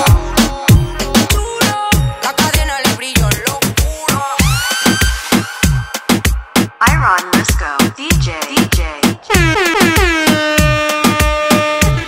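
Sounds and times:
dance music with kick drum: 0.0s - 12.0s.

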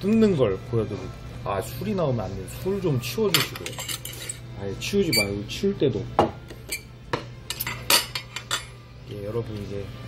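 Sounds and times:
forks clinking against plates: 3.3s - 4.4s, 5.0s - 5.4s, 6.6s - 6.9s, 7.5s - 8.8s.

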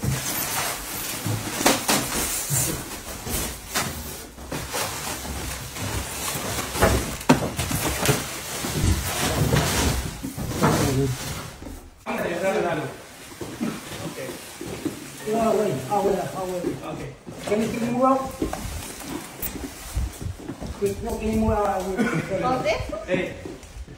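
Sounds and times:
knocks and bumps of furniture: 4.3s - 12.0s.

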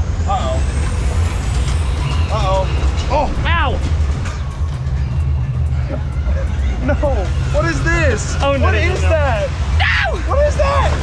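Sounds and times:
water rushing: 7.2s - 11.0s.

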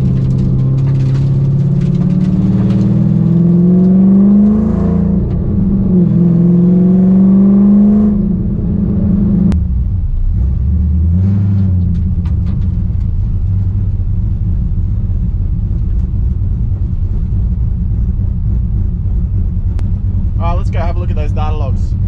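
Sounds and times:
car engine accelerating: 0.0s - 22.0s.

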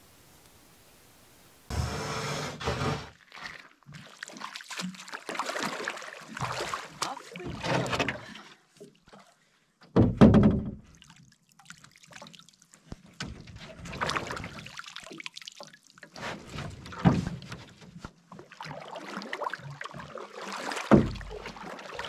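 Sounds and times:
water dripping and splashing: 3.2s - 9.4s, 10.8s - 17.6s, 18.3s - 22.0s
knocks against canoe hull: 9.9s - 10.8s, 20.9s - 21.4s.

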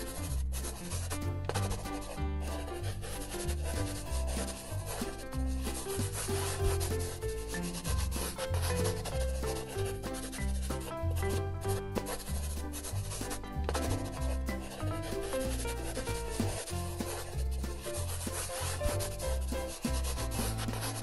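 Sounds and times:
background music: 0.0s - 21.0s
paintbrush stroking paper: 0.0s - 21.0s.

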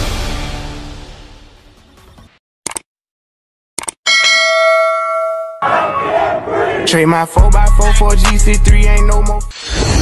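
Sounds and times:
music: 0.0s - 2.4s, 7.2s - 10.0s
notification bell ding: 4.1s - 5.7s.

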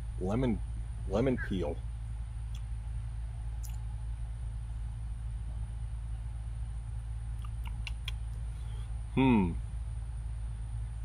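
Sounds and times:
faint hiss: 0.0s - 10.9s
low background rumble: 0.0s - 11.0s.

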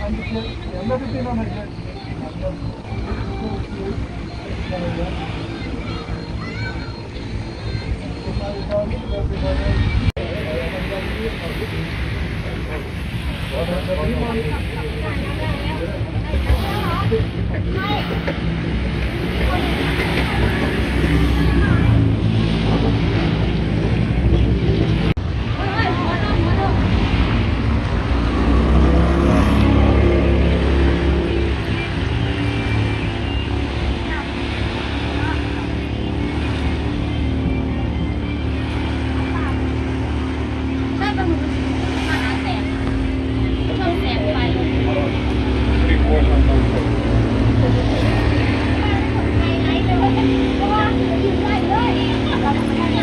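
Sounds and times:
people talking: 0.0s - 53.0s
vehicle engine humming: 0.0s - 53.0s.

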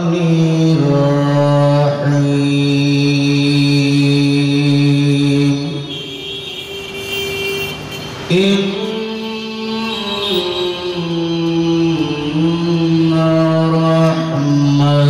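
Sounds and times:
man chanting melodically: 0.0s - 6.1s, 8.2s - 15.0s.

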